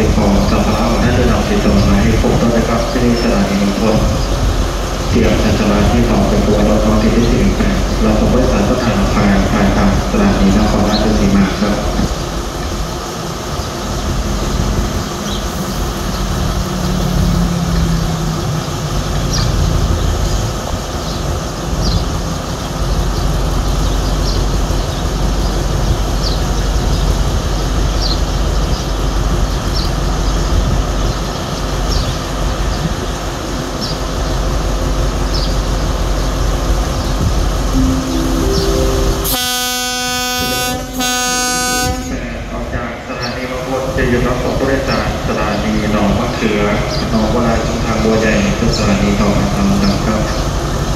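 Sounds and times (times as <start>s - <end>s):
diesel locomotive engine: 0.0s - 50.9s
locomotive horn blasts: 38.6s - 42.4s.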